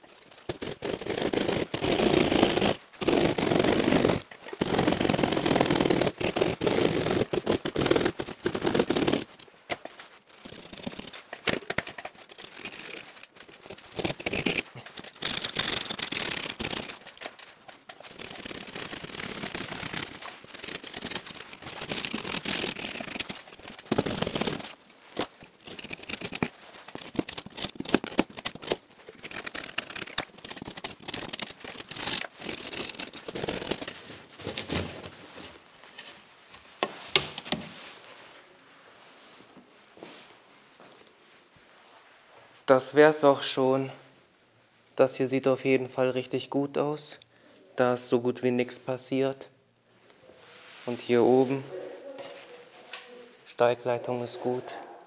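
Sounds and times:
hand saw rasping through plasterboard: 0.4s - 9.4s, 10.4s - 34.1s.

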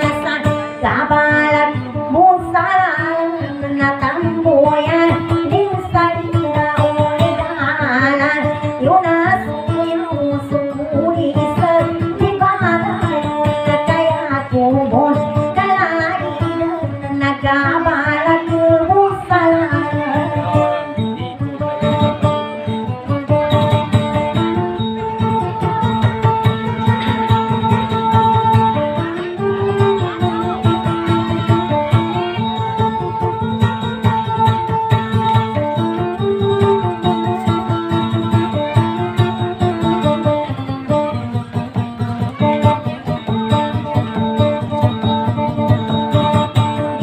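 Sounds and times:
woman singing: 0.0s - 21.8s
plucked acoustic guitar: 0.0s - 47.0s.

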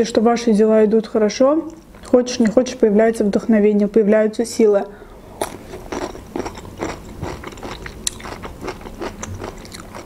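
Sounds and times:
crunching and chewing pickle: 5.4s - 10.0s.

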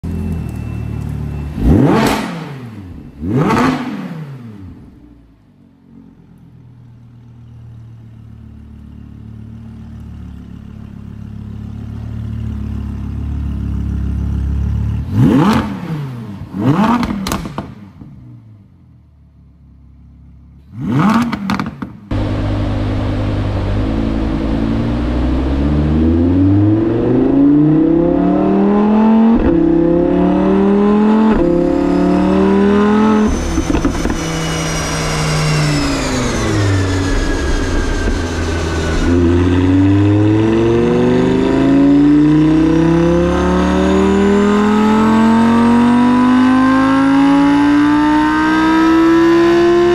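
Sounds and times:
sports car engine revving: 1.4s - 5.2s, 9.8s - 18.0s, 20.7s - 49.9s
car engine running on dyno: 20.8s - 49.9s.

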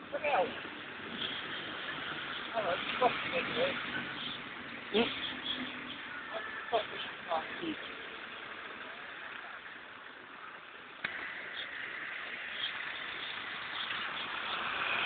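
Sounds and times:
buses and traffic: 0.0s - 15.0s.

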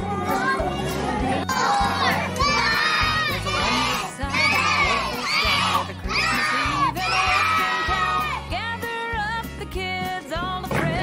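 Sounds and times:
children shouting and cheering: 0.0s - 8.6s.

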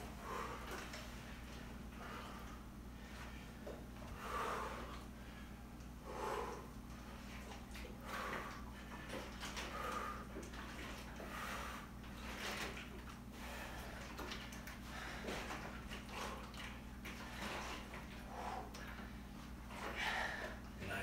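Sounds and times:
man breathing hard: 0.0s - 12.4s, 13.3s - 20.8s
low room hum: 0.0s - 21.0s.

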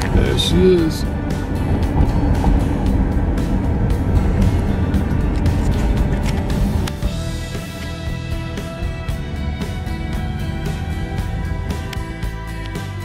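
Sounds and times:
car road and engine rumble: 0.0s - 13.0s
music playing: 0.0s - 13.0s.

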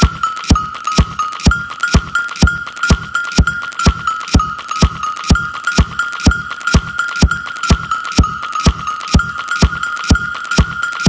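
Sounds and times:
electronic kick drum: 0.0s - 11.0s
hi-hat ticks: 0.0s - 11.0s.

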